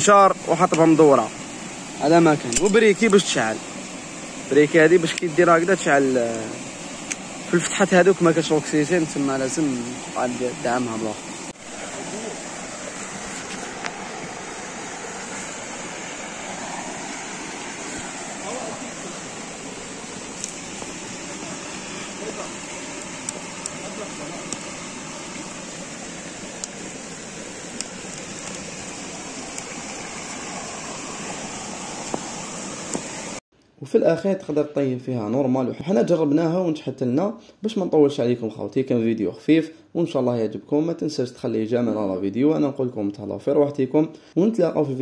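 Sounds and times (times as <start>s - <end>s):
stream water flowing: 0.0s - 33.4s
burning log crackling: 0.3s - 33.4s.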